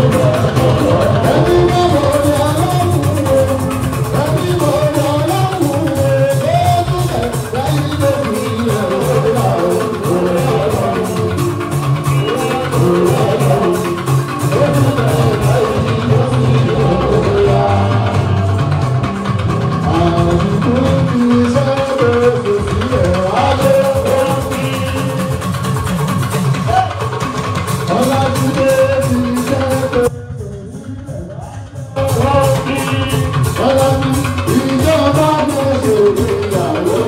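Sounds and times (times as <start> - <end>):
drums: 0.0 - 37.0
man singing into a microphone: 0.0 - 37.0
rhythmic percussion: 0.0 - 37.0.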